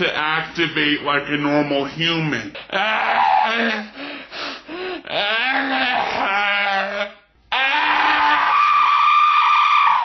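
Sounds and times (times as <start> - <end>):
boy screaming: 2.7 - 3.9, 5.1 - 10.0.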